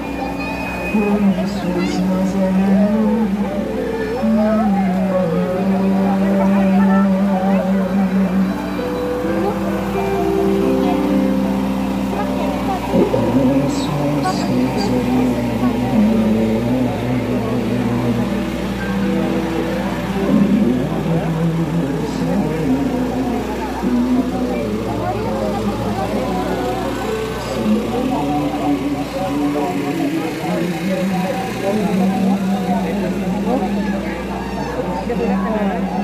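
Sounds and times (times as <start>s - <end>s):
overlapping crowd voices: 0.0s - 36.0s
voices singing slow hymn: 0.0s - 36.0s.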